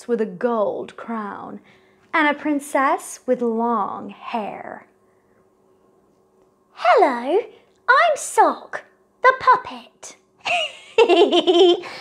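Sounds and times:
woman laughing mockingly: 10.4s - 12.0s.

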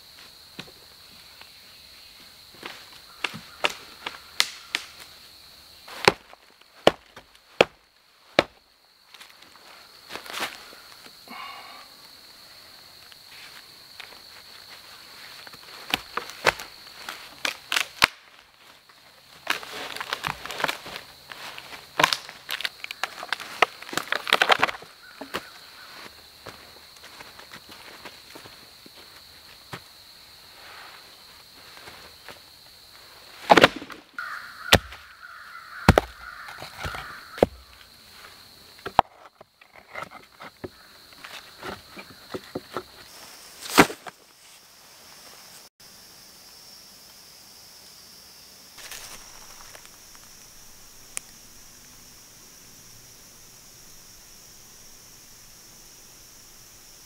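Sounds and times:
logs knocking and thudding: 5.9s - 7.8s, 8.4s - 8.6s, 22.0s - 25.5s, 33.5s - 34.1s, 34.7s - 35.1s, 35.9s - 37.8s, 38.8s - 43.0s
rustling and scraping: 13.3s - 29.6s, 35.9s - 44.6s, 48.8s - 50.2s
crows cawing: 25.0s - 26.1s, 34.2s - 37.9s
footsteps in dry leaves: 48.8s - 50.0s.

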